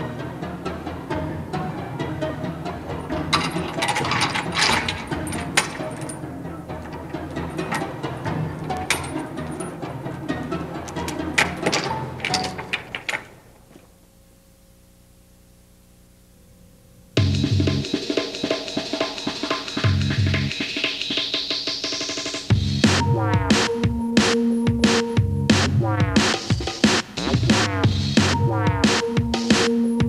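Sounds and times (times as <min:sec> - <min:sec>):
low background music: 0:00.0 - 0:13.0, 0:17.2 - 0:30.0
faint steady hum: 0:00.0 - 0:18.0
metal door hardware clanking: 0:03.1 - 0:13.5.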